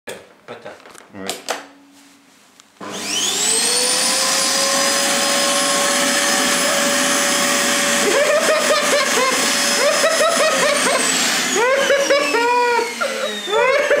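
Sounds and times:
vacuum cleaner motor whine: 2.8 - 14.0.

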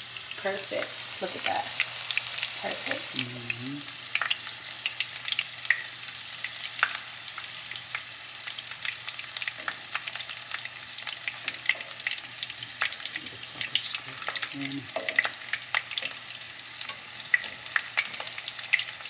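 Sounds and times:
food frying in hot oil: 0.0 - 19.0
metal tongs in pan: 11.0 - 19.0.

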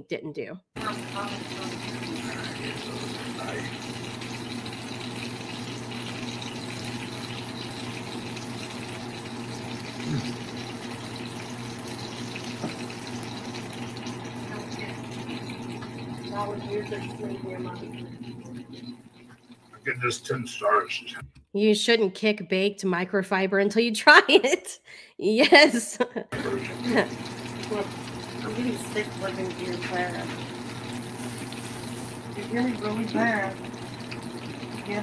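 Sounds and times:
burgers sizzling in a frying pan: 0.8 - 19.6, 26.4 - 35.0
low hum: 10.0 - 21.2.

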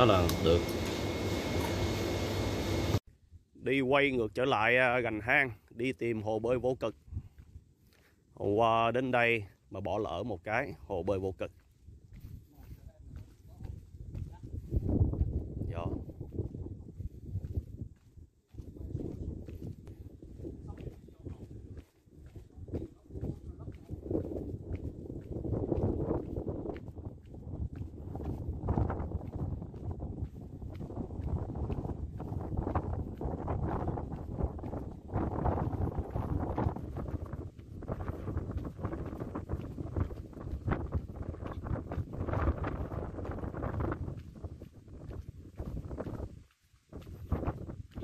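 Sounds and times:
footsteps on concrete: 6.9 - 8.2, 11.4 - 48.0.

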